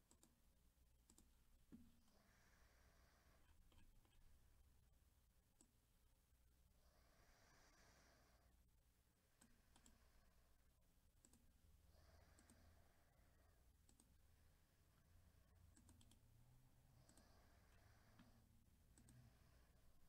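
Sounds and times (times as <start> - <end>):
computer mouse clicks: 0.0 - 0.4, 1.0 - 2.0, 3.4 - 4.3, 9.3 - 10.0, 11.2 - 11.5, 12.2 - 12.7, 13.8 - 14.2, 15.7 - 16.3, 17.0 - 19.4.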